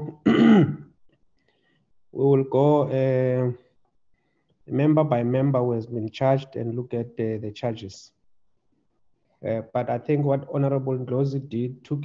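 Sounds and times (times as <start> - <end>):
man clearing his throat: 0.0 - 0.9.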